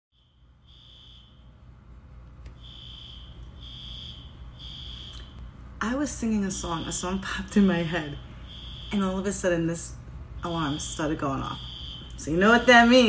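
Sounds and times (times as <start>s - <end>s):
fire alarm beeps: 0.1s - 1.5s, 2.6s - 5.4s, 7.8s - 9.4s, 10.4s - 13.0s.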